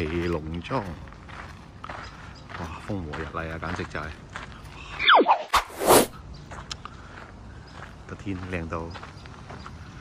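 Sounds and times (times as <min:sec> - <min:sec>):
falling whistle-like tone: 0:05.0 - 0:05.5.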